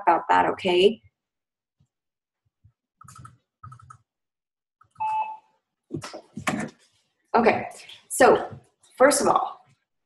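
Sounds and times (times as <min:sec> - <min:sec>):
two-tone electronic beep: 0:05.0 - 0:05.5.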